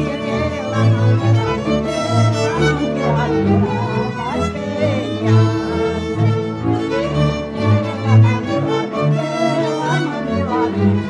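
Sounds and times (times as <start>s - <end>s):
double bass line: 0.0s - 11.0s
fiddle melody: 0.0s - 11.0s.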